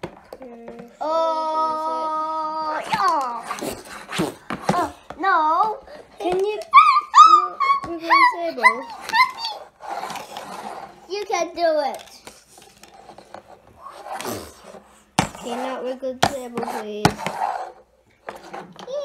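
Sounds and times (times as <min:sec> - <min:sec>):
young child squealing: 0:06.7 - 0:09.7.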